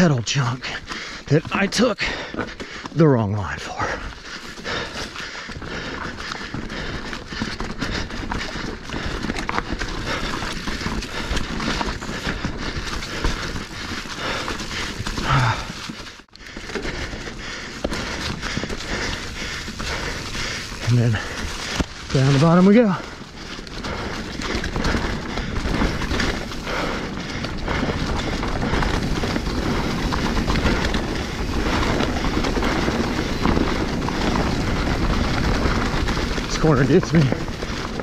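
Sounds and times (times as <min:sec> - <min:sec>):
bike rattling and knocking: 0:00.0 - 0:38.0
bike tyres on dirt: 0:00.0 - 0:38.0.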